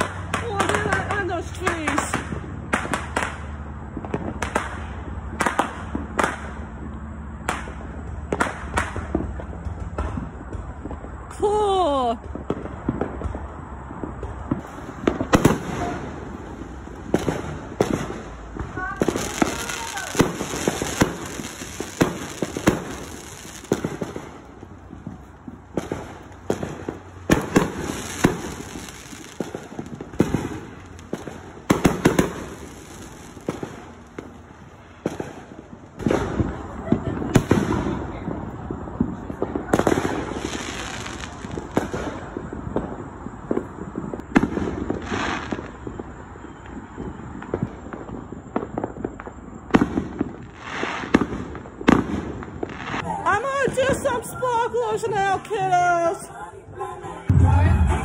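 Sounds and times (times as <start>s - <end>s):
fireworks bangs and pops: 0.0s - 56.2s.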